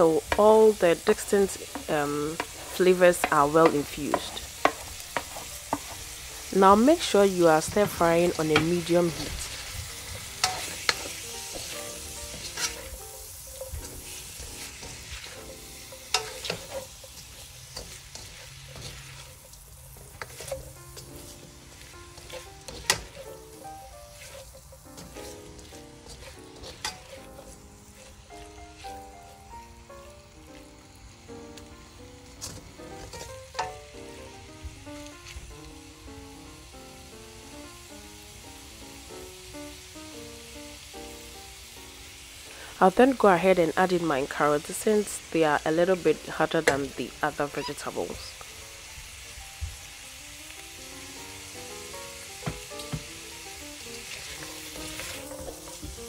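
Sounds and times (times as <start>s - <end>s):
food sizzling in a pan: 0.0s - 56.0s.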